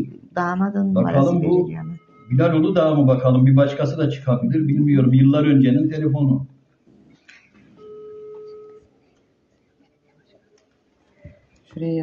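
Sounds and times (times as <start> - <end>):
low telephone line beep: 7.8 - 8.9.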